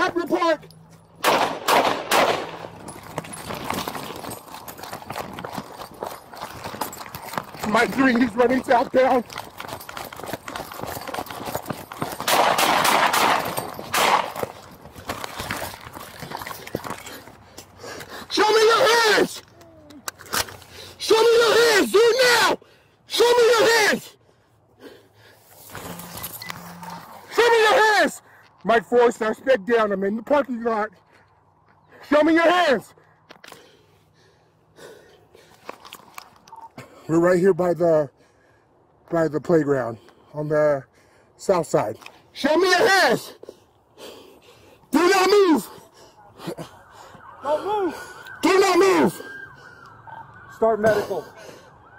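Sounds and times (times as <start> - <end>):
running footsteps: 2.4 - 20.9
equipment rattling: 2.7 - 17.4
man shouting: 18.3 - 20.0, 21.0 - 24.2, 27.2 - 28.2, 42.4 - 43.3, 44.9 - 45.8, 47.4 - 49.2.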